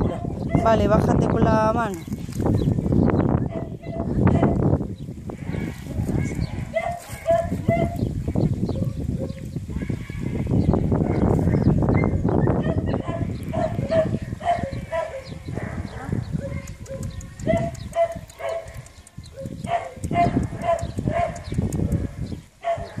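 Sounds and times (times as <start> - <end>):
microphone handling rustle: 0.4 - 3.5, 4.4 - 12.4
dog yelps: 6.7 - 8.0.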